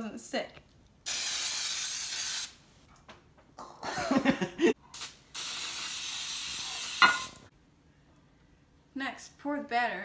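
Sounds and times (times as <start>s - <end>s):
aerosol spray hissing: 1.1s - 2.6s, 5.0s - 7.4s.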